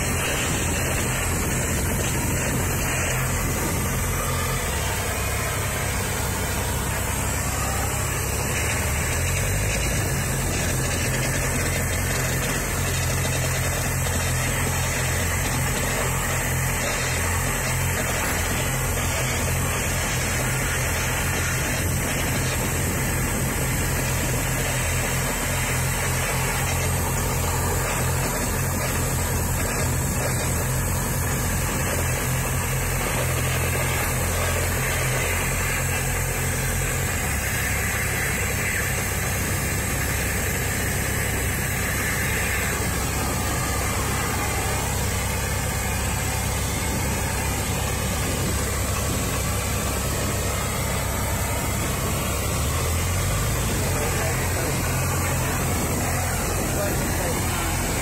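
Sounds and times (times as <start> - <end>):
cutting torch hissing: 0.0 - 58.0
engine humming: 0.0 - 58.0.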